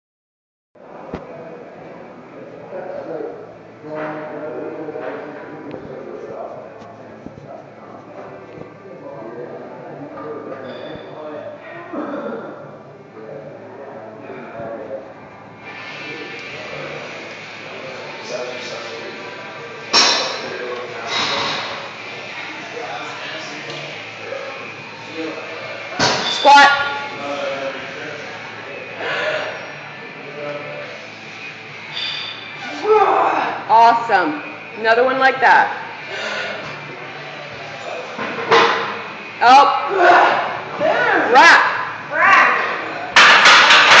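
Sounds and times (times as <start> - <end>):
gym background noise: 0.8 - 44.0.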